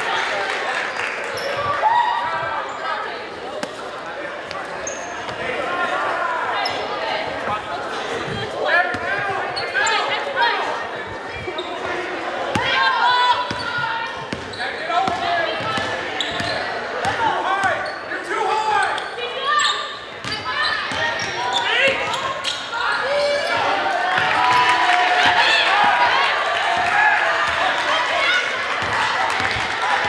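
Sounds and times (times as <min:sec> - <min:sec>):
echoing voices and shouts: 0:00.0 - 0:30.0.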